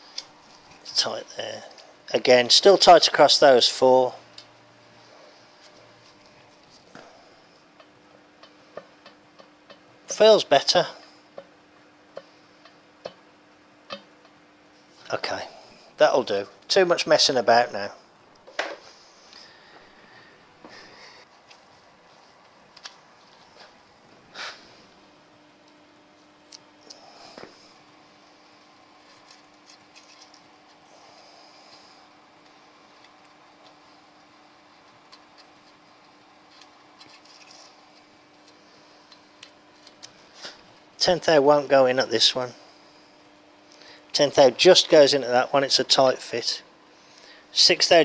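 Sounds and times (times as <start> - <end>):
faint steady hum: 0.0 - 48.0
hands working on metal parts: 31.7 - 40.6.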